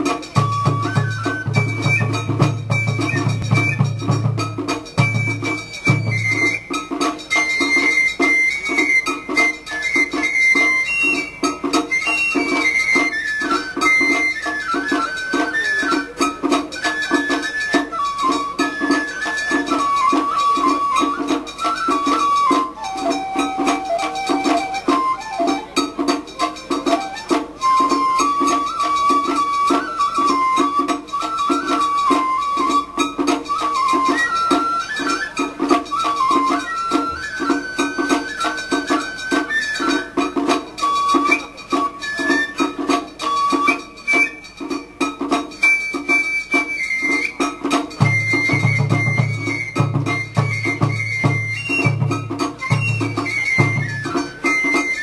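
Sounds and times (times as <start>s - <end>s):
steady drum beat: 0.0s - 7.5s
high flute melody: 0.0s - 55.0s.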